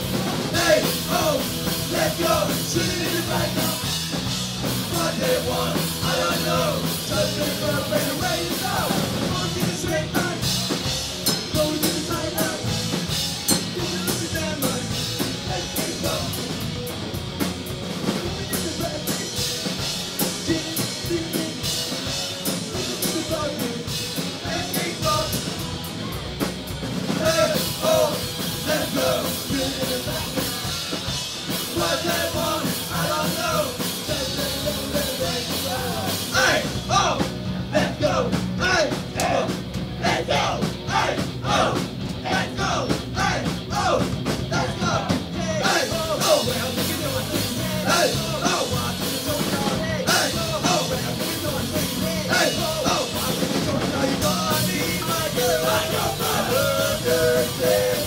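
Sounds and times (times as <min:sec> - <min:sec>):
sung vocals: 0:00.0 - 0:16.7, 0:18.0 - 0:25.8, 0:27.0 - 0:58.0
punk rock band playing: 0:00.0 - 0:58.0.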